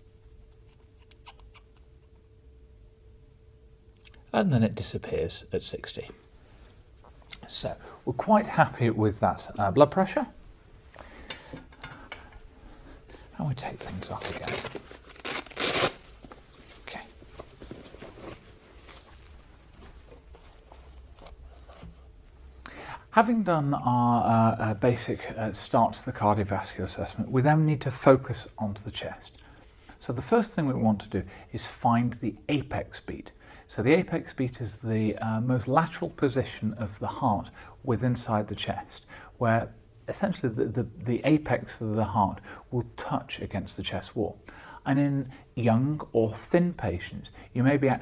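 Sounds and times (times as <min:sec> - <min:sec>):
faint hum: 0:00.0 - 0:48.0
faint clicks and squeaks: 0:00.5 - 0:02.2
faint rustling: 0:12.7 - 0:22.5
soft footsteps: 0:16.0 - 0:22.4.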